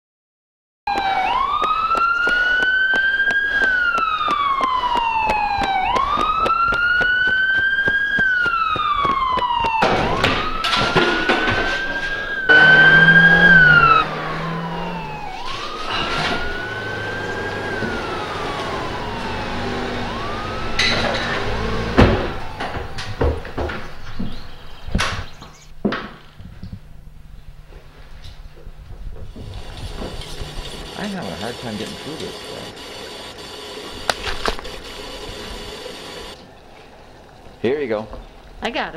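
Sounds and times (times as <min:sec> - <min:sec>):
emergency siren wailing: 0:00.9 - 0:24.4, 0:29.3 - 0:36.4
loud low buzzing tone: 0:12.5 - 0:15.1.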